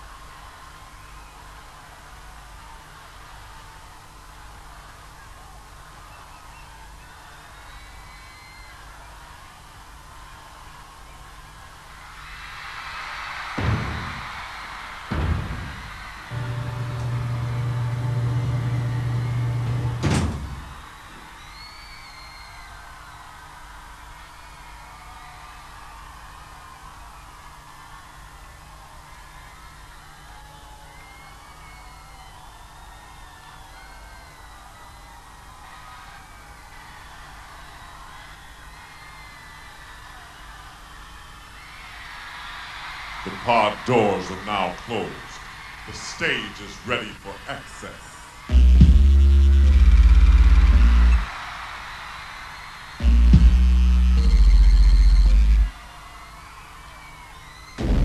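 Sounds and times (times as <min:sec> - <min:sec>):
crowd shrieking: 0:07.4 - 0:09.1, 0:11.9 - 0:48.9, 0:49.8 - 0:58.0
heavy door slam: 0:15.1 - 0:17.0, 0:19.7 - 0:20.7
low machine hum: 0:16.3 - 0:20.1
heavy mechanical clunks: 0:16.3 - 0:20.7.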